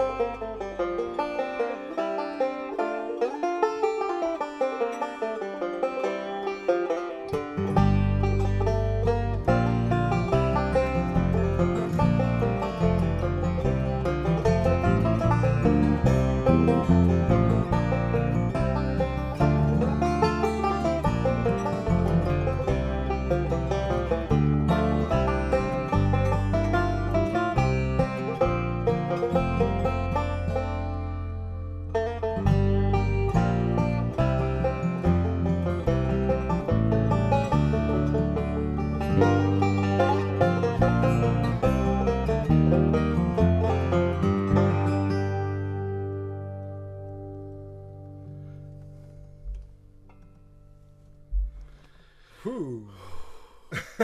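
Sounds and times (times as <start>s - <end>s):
banjo picking rapid runs: 0.0s - 50.2s
strummed acoustic guitar: 0.0s - 52.1s
bass guitar low line: 0.0s - 52.8s.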